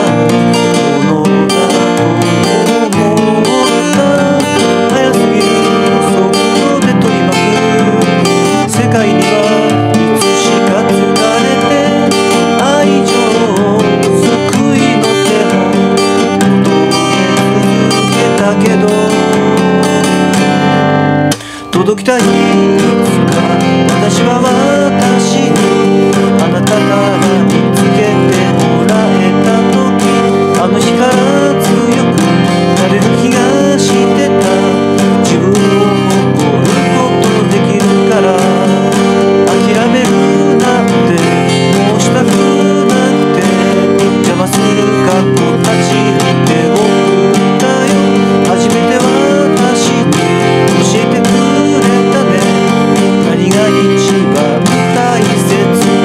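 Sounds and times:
acoustic guitar strumming: 0:00.0 - 0:56.0
person singing a pop song: 0:00.0 - 0:56.0.

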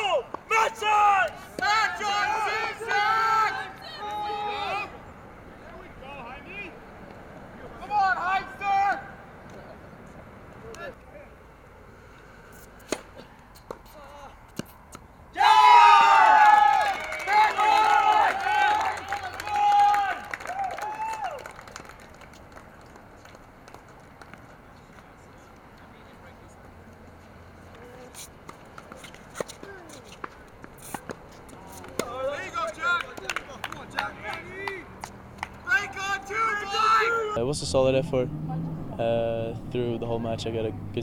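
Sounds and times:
people shouting and cheering: 0:00.0 - 0:05.0, 0:15.3 - 0:21.5, 0:35.6 - 0:37.4.

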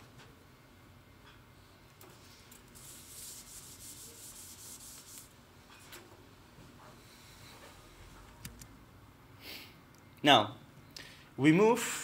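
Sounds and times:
scratchy rubbing strokes: 0:02.8 - 0:05.3.

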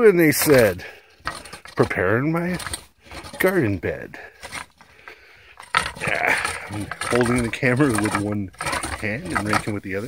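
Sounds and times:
rake scraping through soil: 0:00.2 - 0:10.0.

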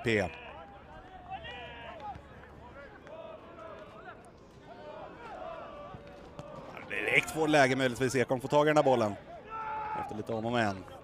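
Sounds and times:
footballers shouting: 0:00.0 - 0:11.0.

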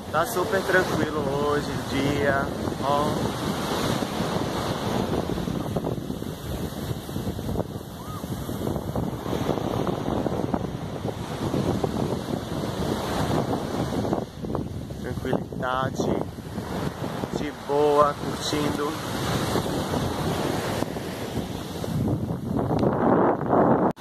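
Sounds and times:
surf on sandy beach: 0:00.0 - 0:24.0
wind buffeting microphone: 0:00.0 - 0:24.0.

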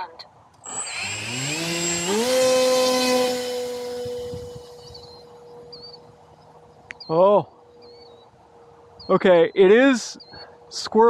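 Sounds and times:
electric motor propeller whine: 0:00.6 - 0:06.8.

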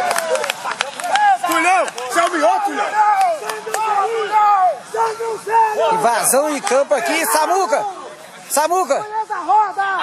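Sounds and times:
men yelling and whooping: 0:00.0 - 0:10.0.

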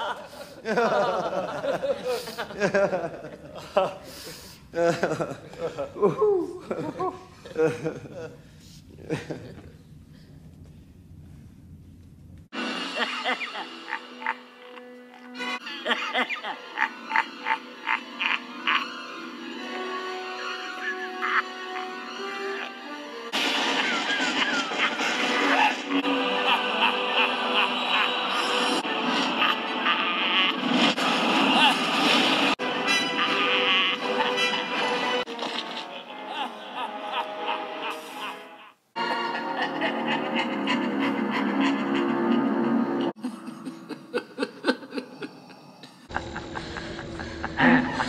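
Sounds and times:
man laughing: 0:00.0 - 0:04.1, 0:04.8 - 0:09.8, 0:12.9 - 0:19.0, 0:20.4 - 0:22.9, 0:23.5 - 0:28.4, 0:33.2 - 0:48.0
film score music: 0:12.5 - 0:48.0
man cackling: 0:12.9 - 0:19.0, 0:20.4 - 0:22.9, 0:35.7 - 0:48.0.

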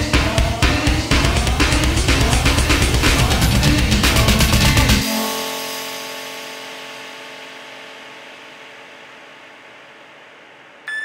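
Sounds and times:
sustained synth chord: 0:05.0 - 0:11.0.

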